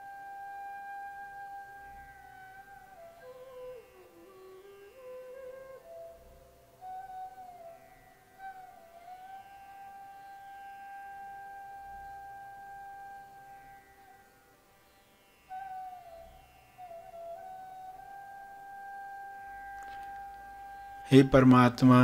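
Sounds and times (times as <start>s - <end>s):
slow flute melody: 0.0s - 14.4s, 15.5s - 22.0s.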